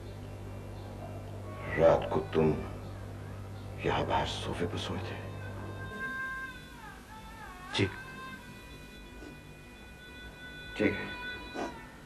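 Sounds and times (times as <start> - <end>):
music of held tones: 2.6 - 12.0.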